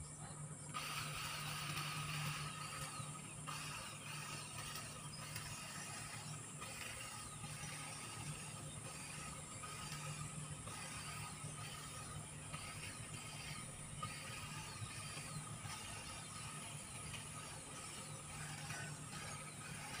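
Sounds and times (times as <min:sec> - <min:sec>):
electric hedge trimmer running: 0:00.7 - 0:20.0.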